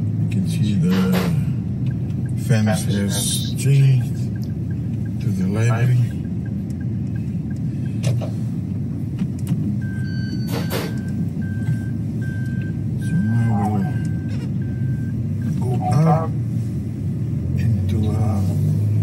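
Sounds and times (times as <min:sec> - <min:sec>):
car cabin road rumble: 0:00.0 - 0:19.0.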